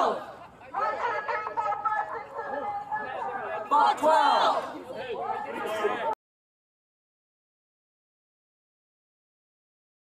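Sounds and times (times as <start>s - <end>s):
crowd voices: 0.0s - 6.2s.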